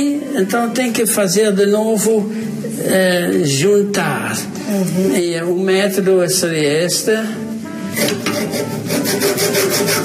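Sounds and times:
hand saw cutting: 8.0s - 10.0s.

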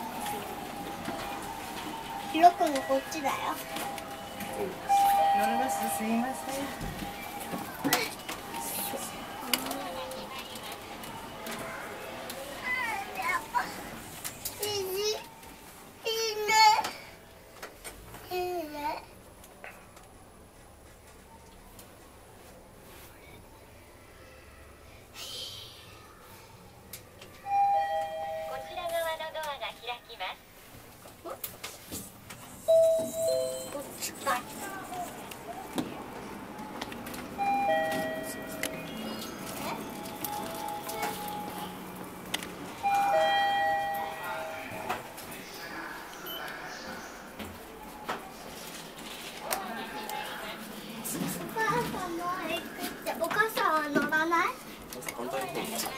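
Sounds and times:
children calling and chattering: 0.0s - 17.2s, 23.0s - 28.0s, 33.0s - 55.9s
elevator two-note arrival chime: 1.0s - 7.4s, 27.5s - 28.7s, 32.7s - 33.9s, 37.4s - 39.1s, 42.8s - 45.0s.

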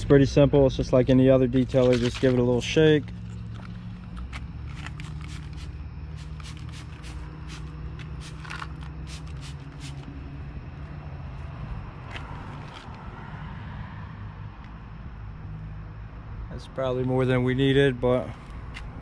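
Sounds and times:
steady low hum: 0.0s - 19.0s
spray bottle spritzing: 4.7s - 10.1s.

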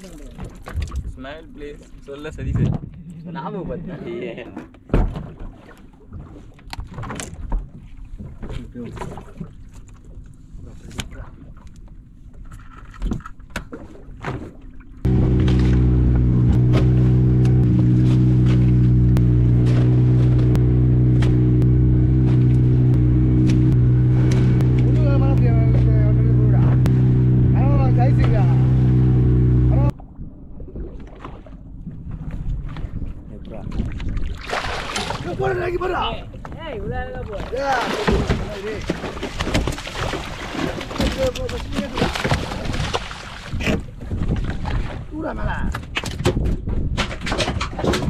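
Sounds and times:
boat engine running: 15.0s - 44.8s
voices: 24.6s - 28.8s, 29.6s - 29.9s.

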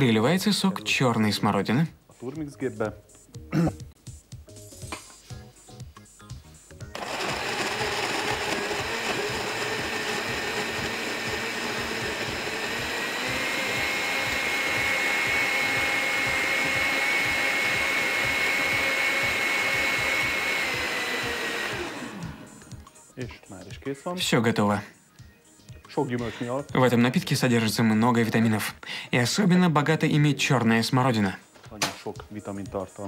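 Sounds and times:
blender motor running: 6.9s - 22.8s.

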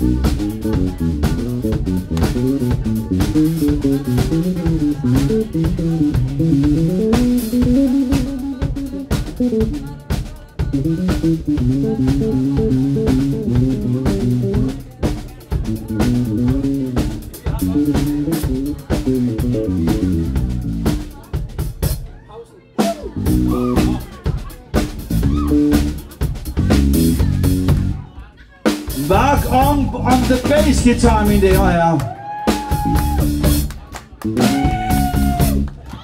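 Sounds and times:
bass line: 0.0s - 22.0s, 22.8s - 36.0s
drums keeping steady beat: 0.0s - 36.0s
live band playing: 0.0s - 36.0s.

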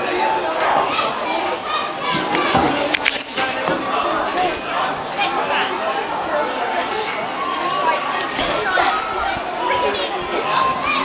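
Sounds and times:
children's voices at play: 0.0s - 11.0s.

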